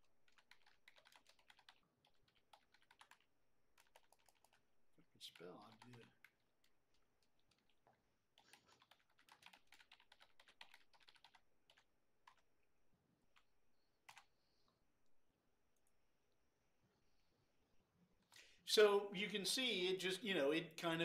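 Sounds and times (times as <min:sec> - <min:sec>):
typing on computer keyboard: 0:00.2 - 0:12.5, 0:13.3 - 0:14.3.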